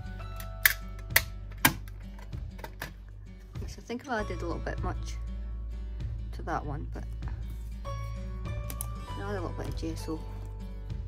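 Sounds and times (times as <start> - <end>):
soft background music: 0.0 - 11.0
sharp clicks of cases handled: 0.4 - 3.0.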